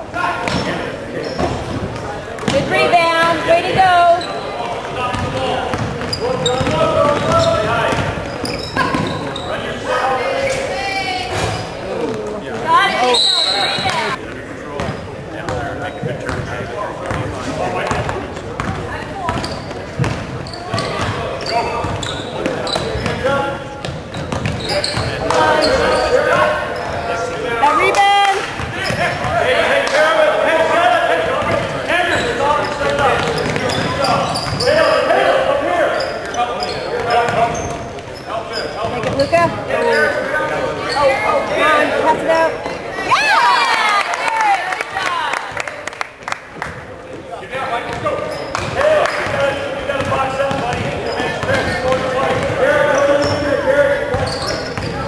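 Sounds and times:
basketball bouncing on hardwood: 17.9 - 20.3
shouts and chatter: 24.6 - 37.7, 38.3 - 45.9.

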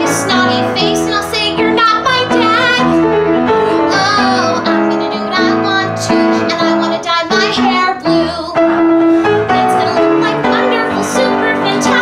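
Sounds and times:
woman singing with vibrato: 0.0 - 8.8, 9.4 - 12.0
instrumental accompaniment: 0.0 - 12.0.

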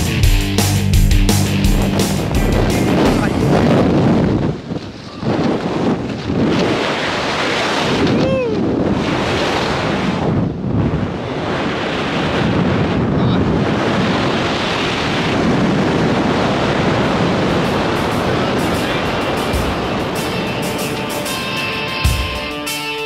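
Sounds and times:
music: 0.0 - 3.6, 17.6 - 23.0
wind blowing over microphone: 0.0 - 22.0.

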